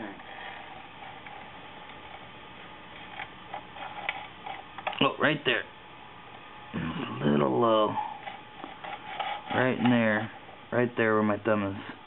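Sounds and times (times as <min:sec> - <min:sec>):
low shop hum: 0:00.0 - 0:12.0.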